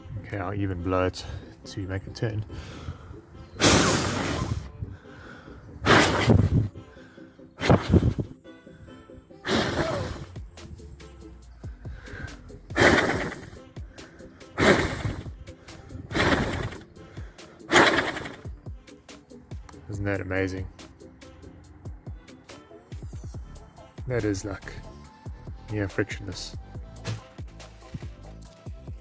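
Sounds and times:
faint background music: 0.0 - 29.0
person blowing hard: 3.6 - 7.0, 7.6 - 8.4, 9.4 - 10.8, 11.8 - 18.5.

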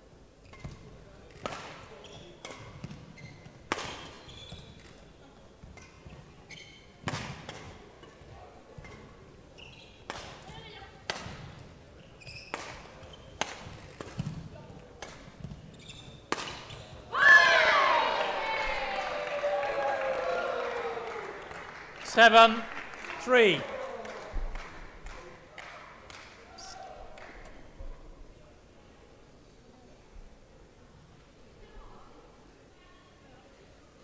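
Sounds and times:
shoes squeaking on court: 0.4 - 17.1
racket hitting shuttlecock: 0.5 - 4.9, 7.0 - 7.8, 10.0 - 11.6, 12.3 - 17.0.

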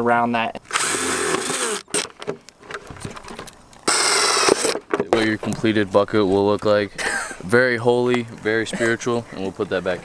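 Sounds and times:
cordless drill drilling plastic: 0.7 - 2.1, 3.8 - 4.8.

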